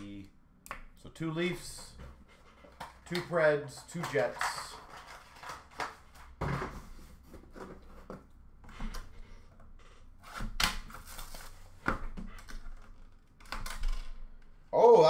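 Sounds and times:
cards knocking and clicking: 1.5 - 6.7.

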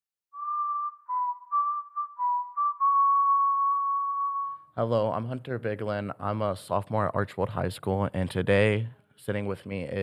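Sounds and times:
whistled melody: 0.3 - 4.7.

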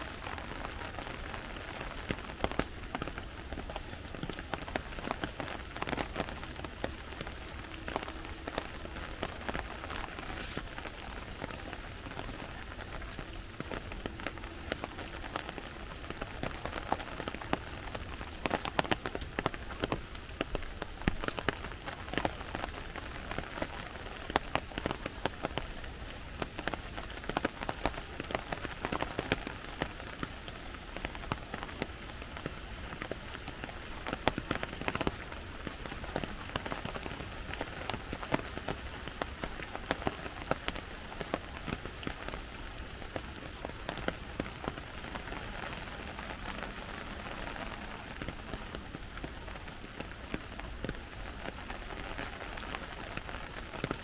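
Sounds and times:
sharp ticks of raindrops: 0.0 - 54.0
steady rain hiss: 0.0 - 54.0.

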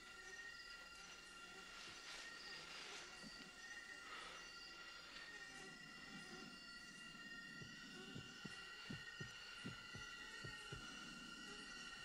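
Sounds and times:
slow heartbeat thumps: 7.0 - 11.8.

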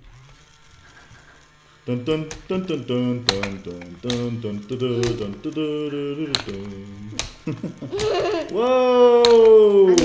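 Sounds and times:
toy electric motor whirring: 0.0 - 10.0
person chanting: 1.8 - 7.3.

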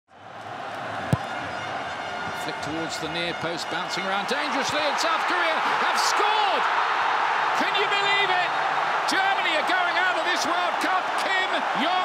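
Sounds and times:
stadium crowd noise: 0.1 - 12.0.

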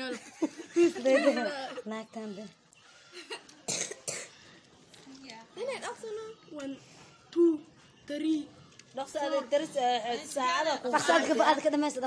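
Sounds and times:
person coughing: 3.7 - 4.4.

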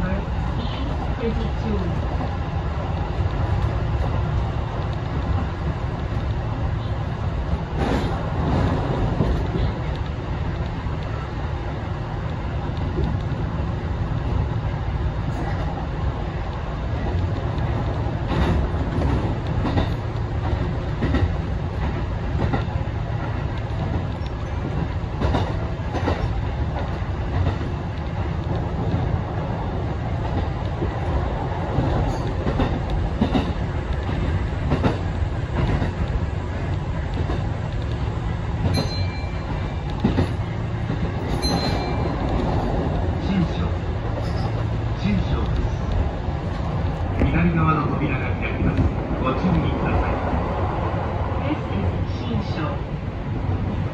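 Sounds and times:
train wheels rumbling: 0.0 - 53.9
wheels clicking over rail joints: 16.5 - 47.4.

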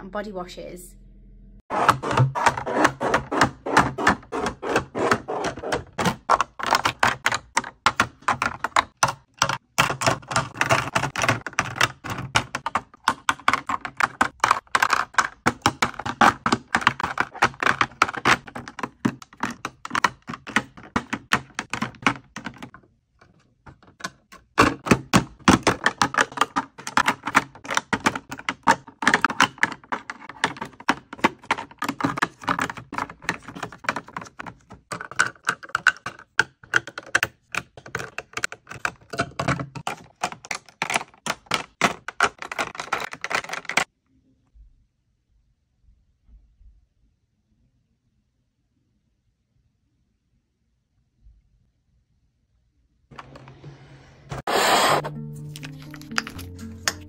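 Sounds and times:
plastic bottles clicking into trays: 1.8 - 22.8, 23.7 - 43.9.

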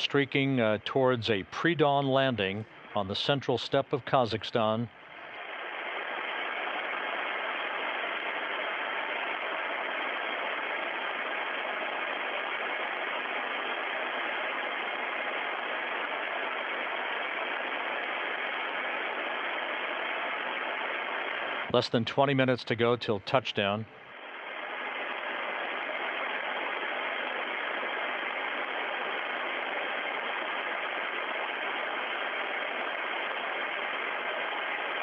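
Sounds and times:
steady static hiss: 0.0 - 35.0.

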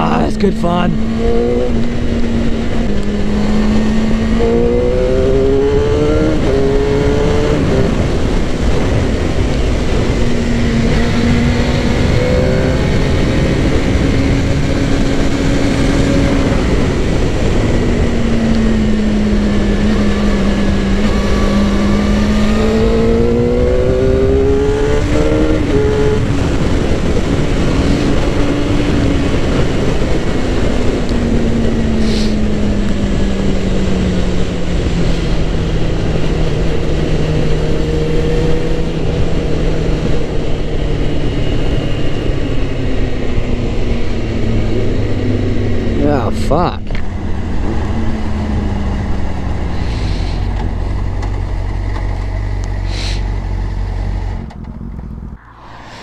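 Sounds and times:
motorcycle engine revving: 0.0 - 46.1
wind noise: 0.0 - 56.0.

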